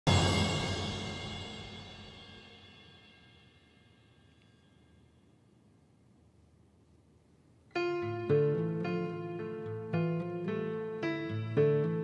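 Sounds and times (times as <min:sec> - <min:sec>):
cymbal-like ring: 0:00.1 - 0:05.4.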